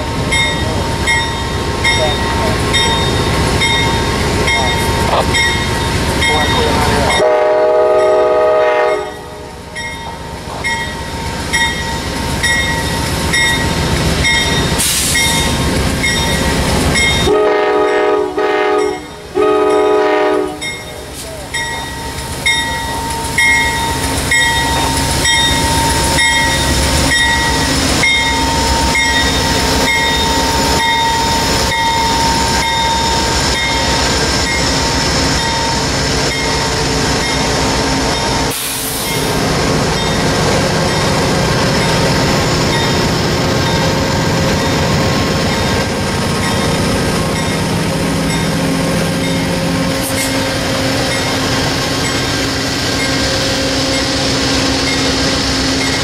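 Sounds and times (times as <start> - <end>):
train rumbling past: 0.0 - 56.0
bell ringing: 0.3 - 7.2, 20.6 - 34.6
locomotive horn blasts: 7.1 - 9.5, 17.2 - 20.8.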